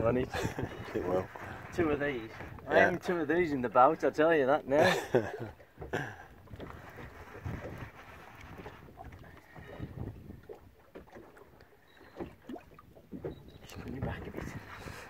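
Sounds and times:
boat background noise: 0:00.0 - 0:15.0
man laughing: 0:00.3 - 0:01.1, 0:04.8 - 0:06.3.

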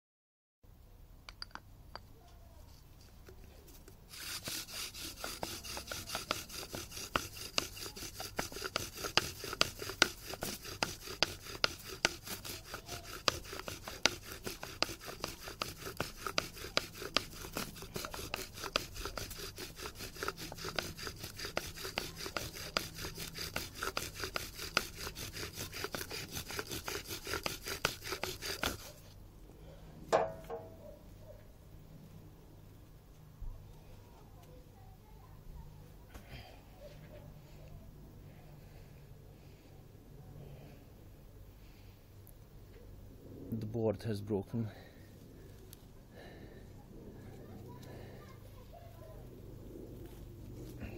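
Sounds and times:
bow drill spindle rubbing wood: 0:04.1 - 0:29.2.

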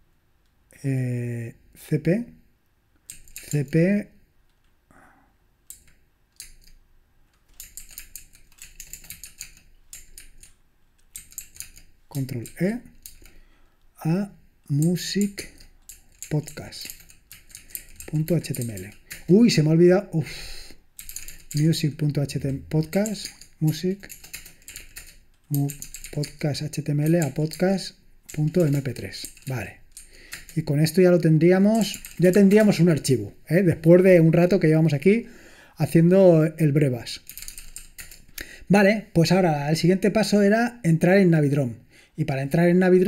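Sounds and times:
man talking: 0:00.8 - 0:02.4, 0:03.4 - 0:04.2, 0:12.1 - 0:12.9, 0:14.0 - 0:15.6, 0:16.3 - 0:16.9, 0:18.1 - 0:20.8, 0:21.5 - 0:24.1, 0:25.5 - 0:29.8, 0:30.6 - 0:37.2, 0:38.7 - 0:43.0
typing on computer keyboard: 0:03.0 - 0:03.8, 0:05.7 - 0:13.4, 0:14.8 - 0:19.6, 0:21.0 - 0:21.8, 0:22.7 - 0:30.7, 0:31.7 - 0:33.0, 0:37.2 - 0:38.3.

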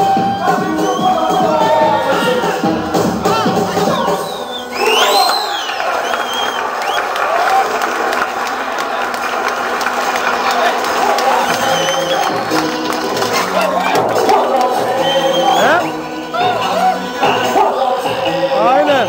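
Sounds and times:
audience cheering and shouting: 0:00.0 - 0:19.0
backing music: 0:00.0 - 0:19.0.

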